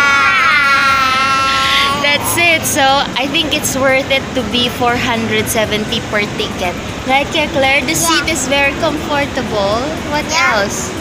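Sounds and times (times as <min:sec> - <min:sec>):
girl squealing: 0:00.0 - 0:02.4.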